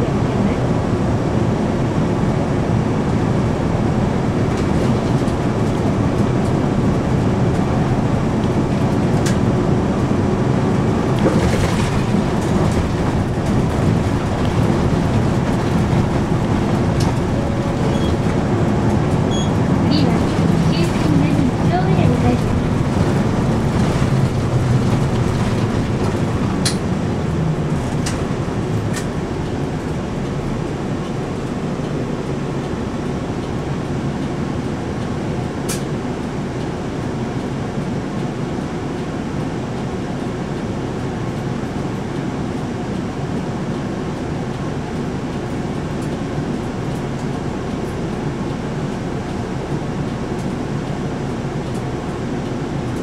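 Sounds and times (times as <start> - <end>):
bus engine running: 0.0 - 53.0
road noise: 0.0 - 53.0.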